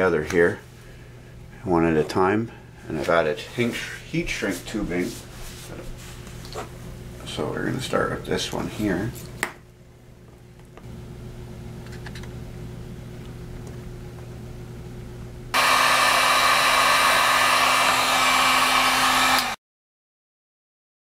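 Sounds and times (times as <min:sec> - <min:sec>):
heat gun blowing air: 0:15.6 - 0:19.6.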